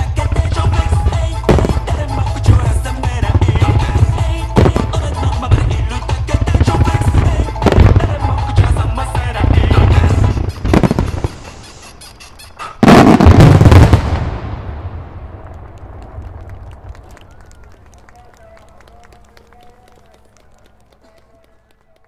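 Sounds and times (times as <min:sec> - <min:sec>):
fireworks crackle: 0:00.0 - 0:22.0.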